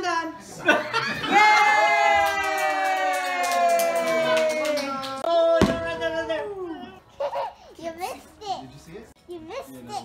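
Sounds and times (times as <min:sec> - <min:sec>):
hand claps: 0:02.2 - 0:05.3
sharp firework bang: 0:05.6 - 0:06.4.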